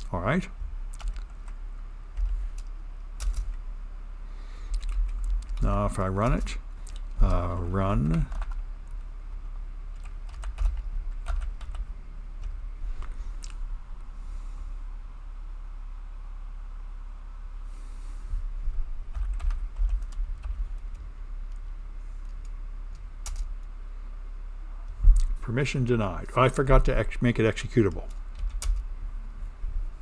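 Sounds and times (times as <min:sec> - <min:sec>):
typing on computer keyboard: 0:00.9 - 0:01.6, 0:02.2 - 0:03.6, 0:04.7 - 0:05.7, 0:08.0 - 0:08.6, 0:10.0 - 0:12.5, 0:19.1 - 0:21.0, 0:22.2 - 0:23.5, 0:28.1 - 0:28.8.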